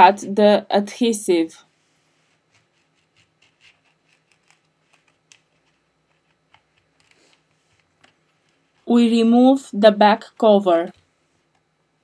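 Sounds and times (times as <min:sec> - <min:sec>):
plastic card scraping and clicking: 0:02.5 - 0:08.8.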